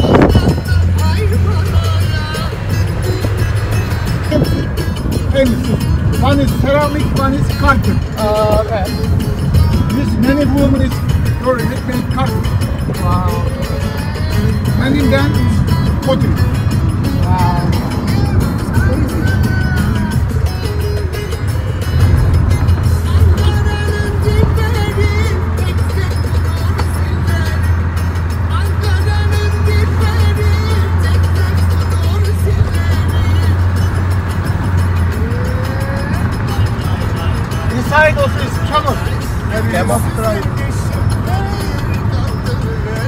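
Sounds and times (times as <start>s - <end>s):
car engine and road rumble: 0.0s - 43.0s
music playing: 0.0s - 43.0s.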